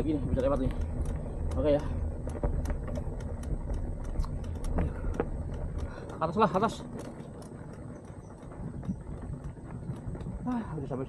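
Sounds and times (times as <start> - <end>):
bike clicks and rattles: 0.0 - 11.0
mountain bike rolling on dirt: 0.0 - 11.0.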